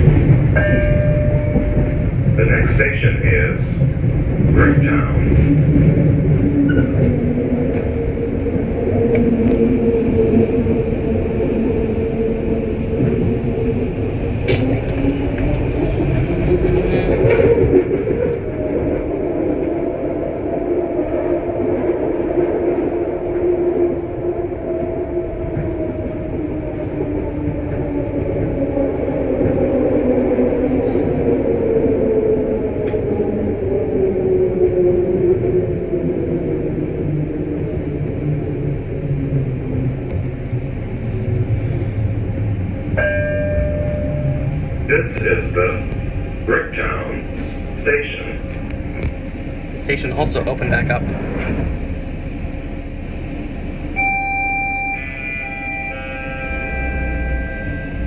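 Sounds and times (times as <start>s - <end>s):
steel wheels rumbling on rail: 0.0s - 58.0s.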